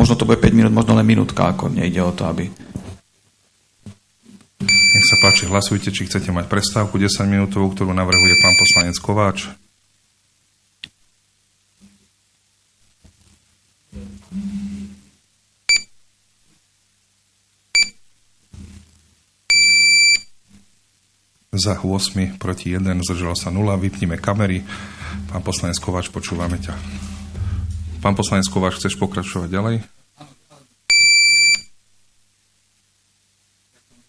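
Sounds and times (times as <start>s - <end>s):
short high-pitched beeps: 4.6s - 5.6s, 8.1s - 8.8s, 15.7s - 15.9s, 17.8s - 18.0s, 19.5s - 20.3s, 30.9s - 31.7s
longer electronic beep: 4.7s - 5.6s, 8.1s - 8.8s, 17.8s - 18.0s, 19.5s - 20.2s, 30.9s - 31.7s
loud electronic beep: 4.7s - 5.6s, 8.2s - 8.8s
short low sound: 26.5s - 29.0s.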